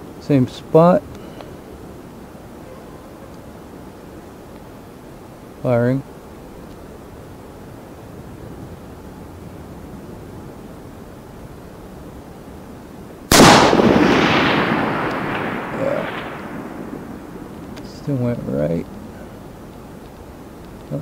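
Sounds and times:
rifle shot with rolling echo: 13.3s - 19.1s.

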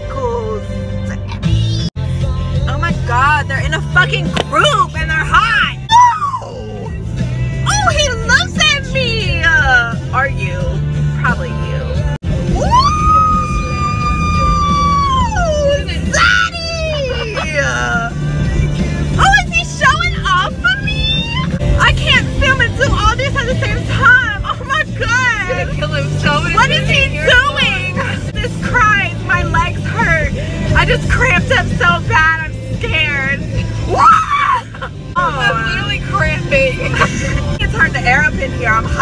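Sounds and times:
music: 0.0s - 39.0s
steady low rumble: 6.8s - 39.0s
women squealing and laughing: 12.6s - 17.7s.

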